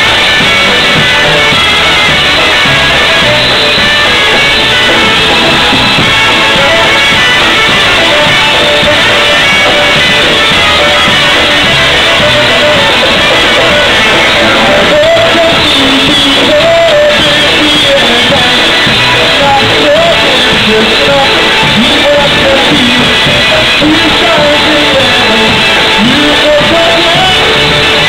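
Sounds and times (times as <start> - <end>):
accordion: 0.0 - 28.0
bass: 0.0 - 28.0
drum kit: 0.0 - 28.0
horns: 0.0 - 28.0
polka band playing: 0.0 - 28.0.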